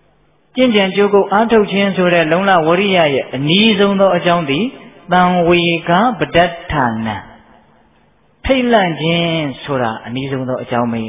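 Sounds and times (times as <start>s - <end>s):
man preaching in intoned voice: 0.5s - 7.8s, 8.4s - 11.0s.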